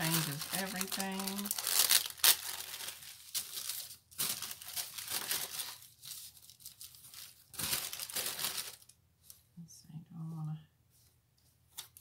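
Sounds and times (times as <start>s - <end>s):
plastic sticker sheet crinkling: 0.0s - 9.4s.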